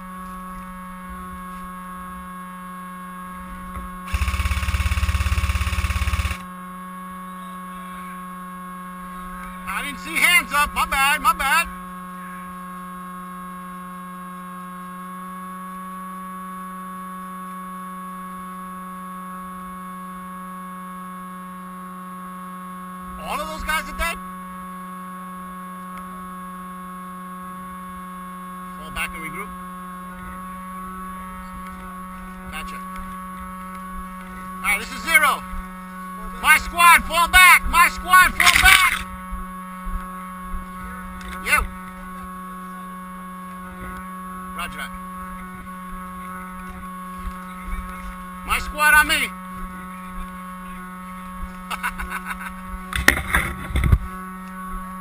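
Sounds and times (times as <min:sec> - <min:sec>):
steady tonal hum: 0:00.0 - 0:55.0
people shouting: 0:36.5 - 0:39.0.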